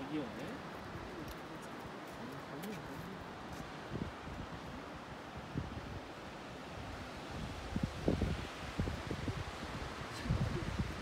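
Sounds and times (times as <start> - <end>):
wind blowing over microphone: 0.0 - 11.0.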